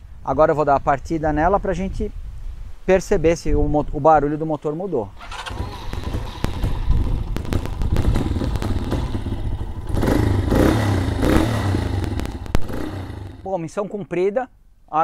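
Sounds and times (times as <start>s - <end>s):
motorcycle engine idling: 5.2s - 13.5s
sharp clicks: 11.8s - 13.4s.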